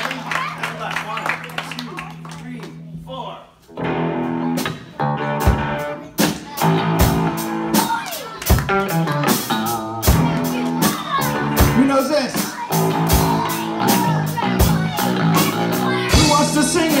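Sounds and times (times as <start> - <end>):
rock band playing: 3.6 - 17.0.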